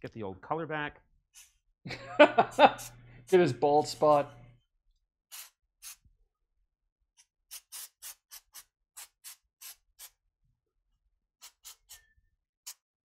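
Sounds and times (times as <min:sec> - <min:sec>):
aerosol can spraying: 0:02.4 - 0:04.2, 0:05.3 - 0:06.0, 0:07.5 - 0:10.2.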